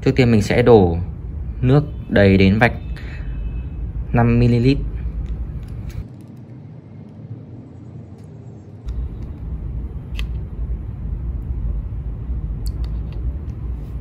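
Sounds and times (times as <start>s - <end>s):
low rumbling background noise: 0.0s - 14.0s.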